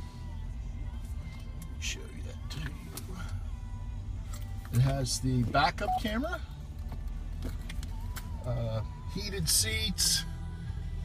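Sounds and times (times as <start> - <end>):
car radio playing faintly: 0.0 - 11.0.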